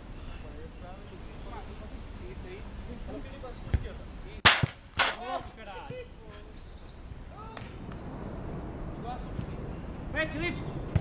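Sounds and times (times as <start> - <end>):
football struck hard: 4.4 - 5.2.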